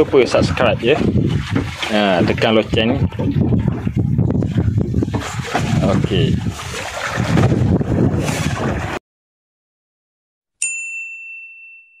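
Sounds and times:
bright bell-like ding: 10.6s - 12.0s.

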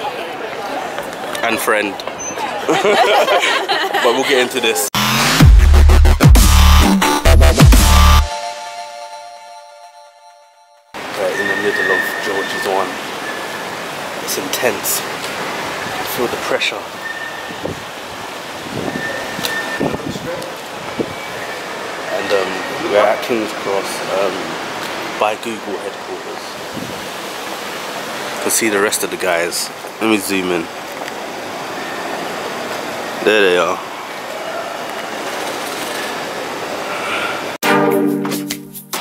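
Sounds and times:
city background hiss: 0.0s - 4.9s, 11.0s - 37.6s
music with a beat: 5.0s - 9.0s, 37.7s - 39.0s
outdoor ambient noise: 11.0s - 37.6s.

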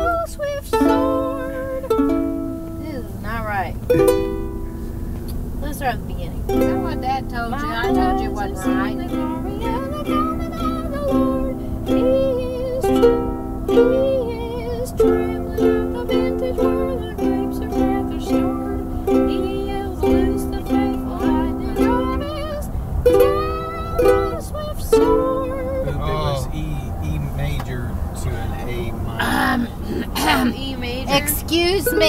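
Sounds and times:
person singing: 0.0s - 2.2s, 6.5s - 26.8s, 31.1s - 32.0s
ukulele strumming chords: 0.0s - 5.8s, 6.4s - 26.5s, 30.2s - 32.0s
low car cabin rumble: 0.0s - 32.0s.

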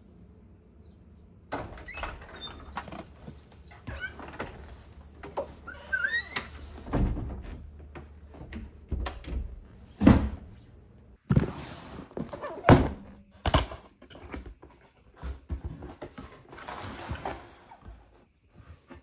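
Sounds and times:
door squeaking: 1.5s - 3.0s, 3.8s - 7.4s
door clicks and knocks: 6.3s - 10.3s.

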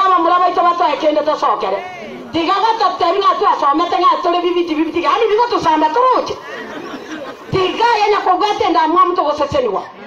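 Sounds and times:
woman preaching: 0.0s - 6.4s, 7.5s - 10.0s
low crowd chatter: 0.0s - 10.0s.

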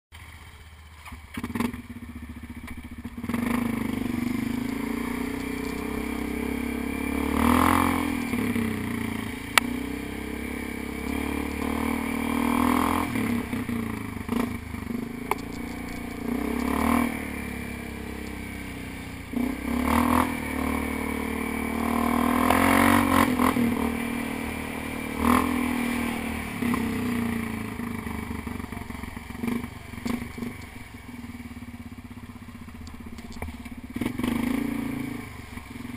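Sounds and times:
atv engine revving: 0.2s - 35.9s.

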